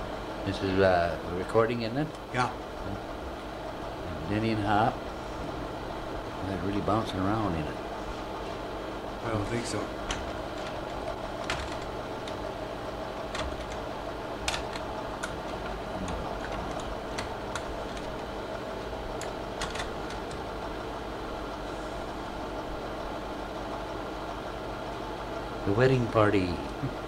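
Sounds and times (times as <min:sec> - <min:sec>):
projector mechanical drone: 0:00.0 - 0:27.0.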